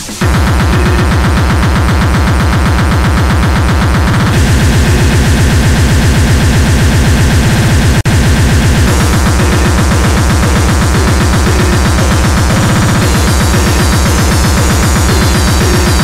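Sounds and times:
fast distorted kick drums: 0:00.0 - 0:16.0.

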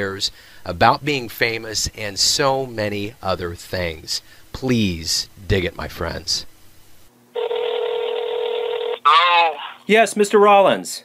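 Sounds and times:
telephone ringback tone: 0:07.4 - 0:09.1.

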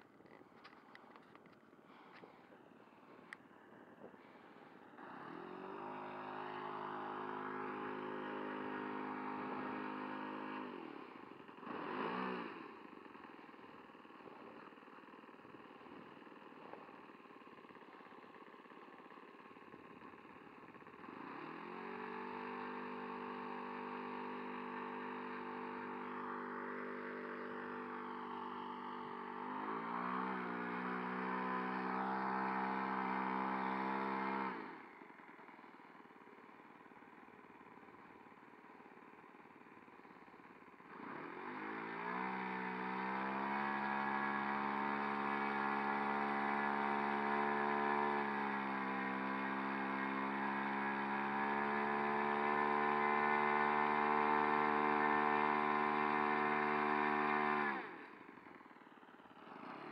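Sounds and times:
model airplane engine running: 0:00.0 - 0:59.9.

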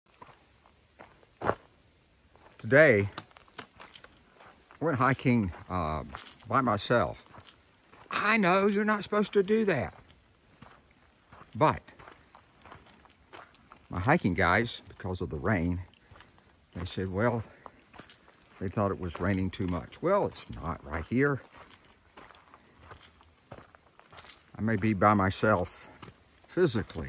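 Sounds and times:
footsteps on dirt trail: 0:00.1 - 0:27.0.

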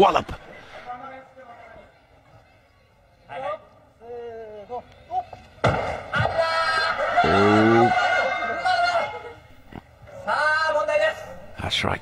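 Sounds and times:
man shouting: 0:06.3 - 0:08.1
high-pitched voices shouting: 0:06.8 - 0:09.0.

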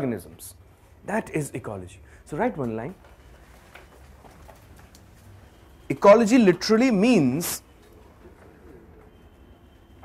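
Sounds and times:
faint steady high whine: 0:00.0 - 0:10.0.

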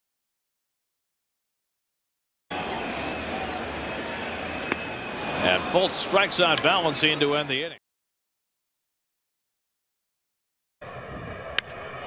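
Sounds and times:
crowd murmur: 0:02.5 - 0:07.6
baseball bat crack: 0:11.5 - 0:11.8.

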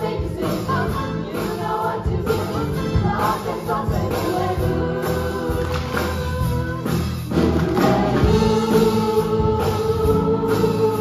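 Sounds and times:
ensemble singing together: 0:00.0 - 0:11.0
live keyboard accompaniment: 0:00.0 - 0:11.0.

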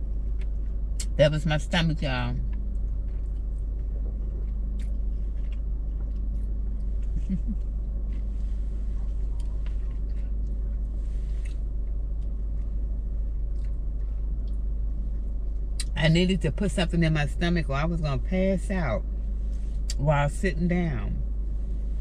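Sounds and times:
quiet chewing: 0:00.1 - 0:01.0, 0:02.5 - 0:15.9.

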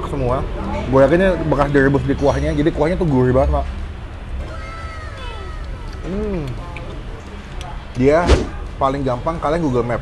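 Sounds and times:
high-pitched falling animal call: 0:04.4 - 0:06.6.

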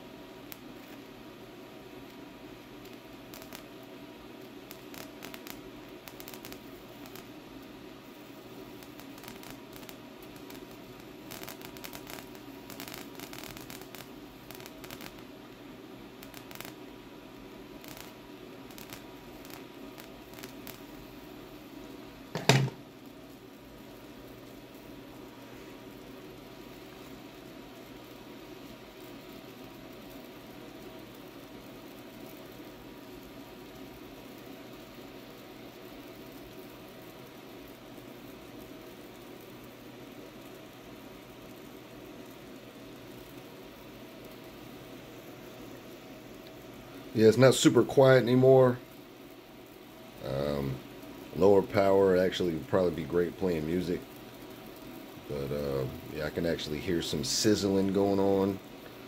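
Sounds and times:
electric crackles: 0:00.0 - 0:59.0
tesla coil plasma flame sizzling: 0:00.0 - 0:59.0
loud pop: 0:22.3 - 0:22.8.

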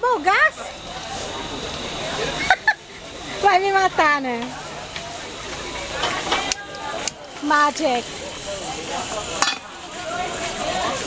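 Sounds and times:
gas burner hissing: 0:00.0 - 0:11.0
frying pan clink on burner: 0:09.3 - 0:09.9.

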